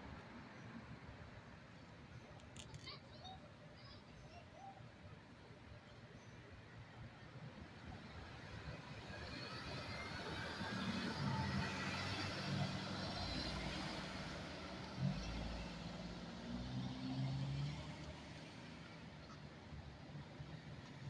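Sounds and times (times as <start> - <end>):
car driving past: 9.4 - 19.1.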